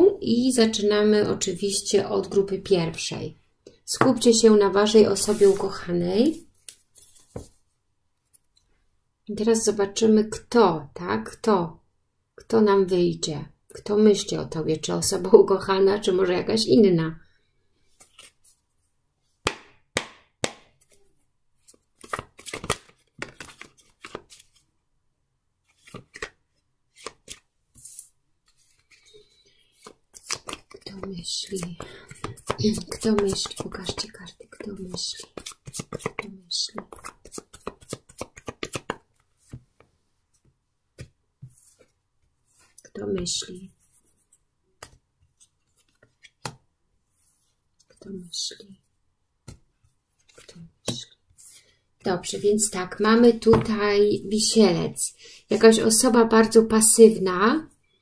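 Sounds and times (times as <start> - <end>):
cards being shuffled: 21.6 - 24.7, 25.7 - 39.6, 43.8 - 46.6, 50.2 - 50.6.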